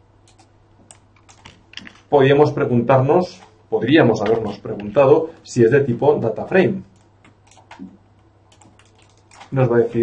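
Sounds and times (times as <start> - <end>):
keyboard keystrokes: 0.2 - 2.1, 7.0 - 9.6.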